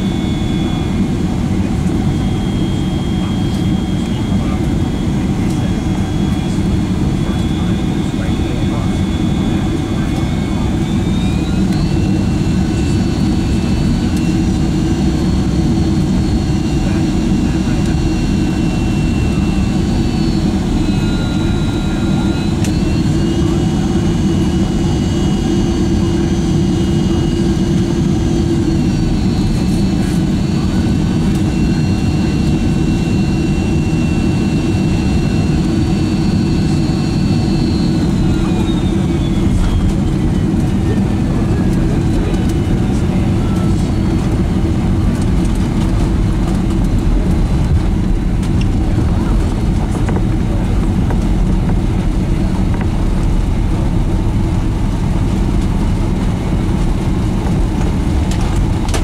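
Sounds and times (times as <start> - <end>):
high engine whine: 0.0 - 59.0
jet engine rumble: 0.0 - 59.0.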